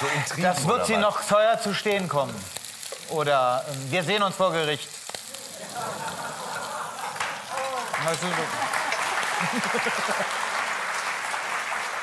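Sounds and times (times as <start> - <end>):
food sizzling in a pan: 0.0 - 12.0
audience applauding: 5.6 - 12.0.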